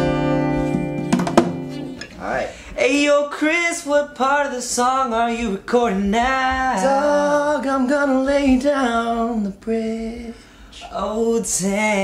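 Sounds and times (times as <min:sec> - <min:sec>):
acoustic guitar chord ringing: 0:00.0 - 0:02.1
sharp knocks: 0:00.7 - 0:02.1.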